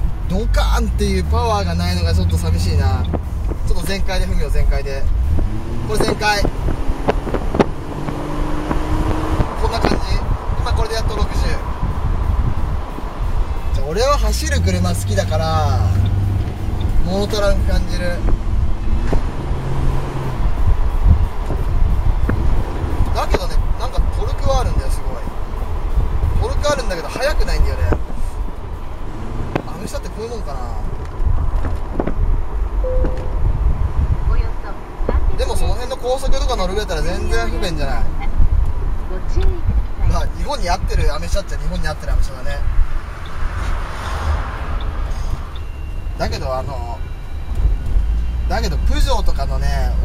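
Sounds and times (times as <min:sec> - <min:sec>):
car engine rumble: 0:00.0 - 0:50.0
road noise: 0:00.0 - 0:50.0
wind noise: 0:00.0 - 0:50.0.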